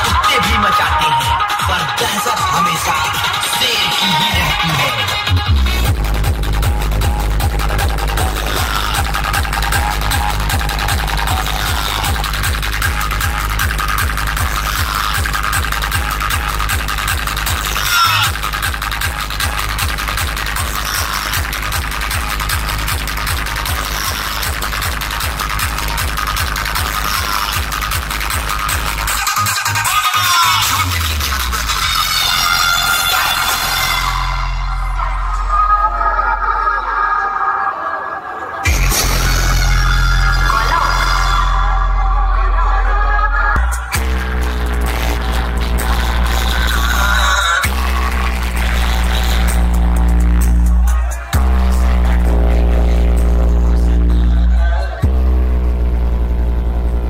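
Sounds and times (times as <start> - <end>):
heavy pulsing bass: 0.0 - 37.4, 38.6 - 57.0
loud electronic dance music: 0.0 - 57.0.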